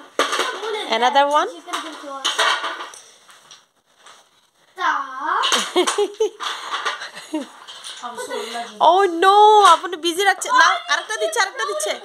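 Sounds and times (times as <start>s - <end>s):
wooden toy blocks clattering: 0.0s - 4.2s, 5.4s - 12.0s.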